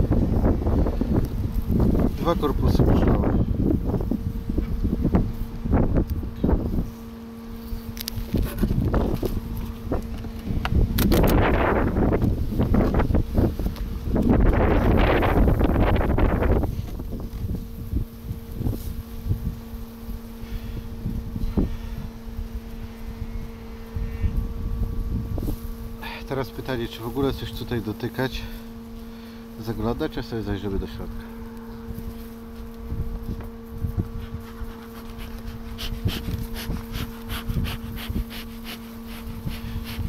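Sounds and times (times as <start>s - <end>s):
wind buffeting microphone: 0.0s - 7.0s, 7.8s - 26.0s, 31.8s - 40.0s
honeybees humming: 0.0s - 40.0s.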